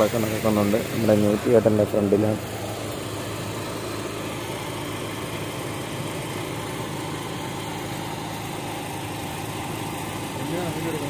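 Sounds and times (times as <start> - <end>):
small engine running steadily: 0.0 - 11.0.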